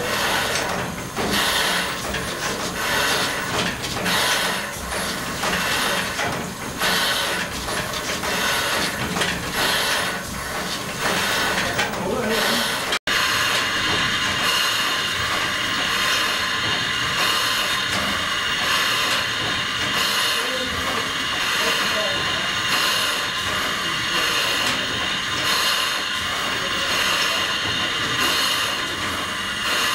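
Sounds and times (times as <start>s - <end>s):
steam hissing: 0.0s - 29.9s
steam pump working strokes: 0.0s - 29.9s.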